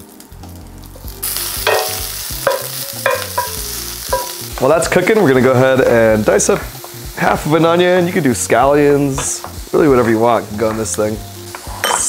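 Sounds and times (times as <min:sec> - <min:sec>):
sausage sizzling in a skillet: 0:00.0 - 0:12.0.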